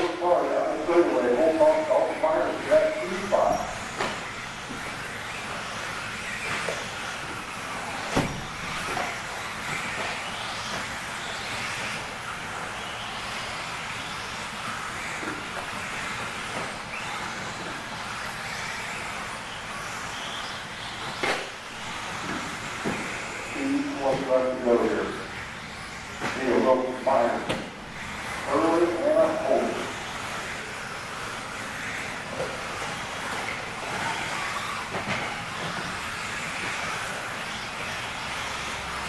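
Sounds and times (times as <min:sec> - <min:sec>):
electric motor whine: 0:00.0 - 0:39.0.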